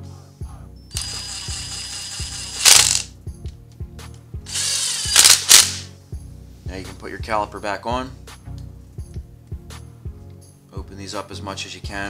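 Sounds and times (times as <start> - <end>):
background music with steady beat: 0.0 - 12.0
power driver running: 0.9 - 3.1, 4.5 - 5.9.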